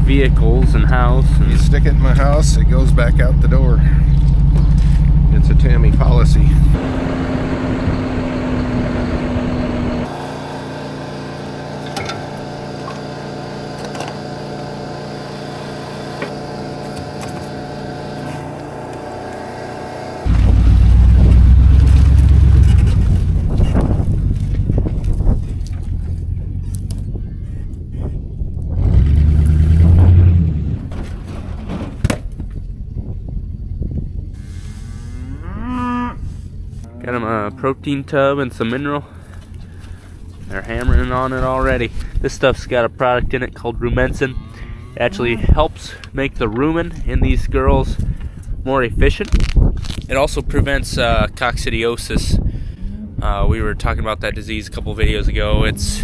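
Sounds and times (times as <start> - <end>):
loud low rumbling: 0.0 - 13.7, 14.3 - 56.0
engine humming: 0.0 - 48.6, 49.3 - 56.0
cattle mooing: 34.4 - 37.8, 44.3 - 45.6, 52.8 - 53.3, 55.5 - 56.0.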